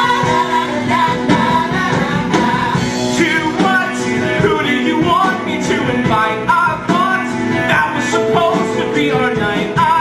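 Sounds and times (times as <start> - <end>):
band accompaniment: 0.0 - 10.0
person singing: 0.0 - 10.0.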